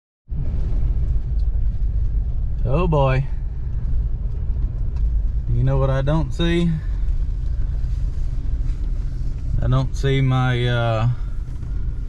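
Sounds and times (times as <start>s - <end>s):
truck rumble on dirt track: 0.3s - 12.0s.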